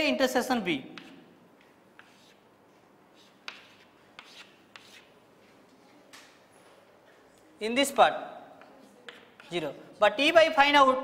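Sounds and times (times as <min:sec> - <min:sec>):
chalk tapping on chalkboard: 0:00.8 - 0:02.5, 0:03.1 - 0:05.2, 0:08.6 - 0:09.7
chalk scratching on chalkboard: 0:00.9 - 0:02.5, 0:03.1 - 0:05.2, 0:08.6 - 0:09.8.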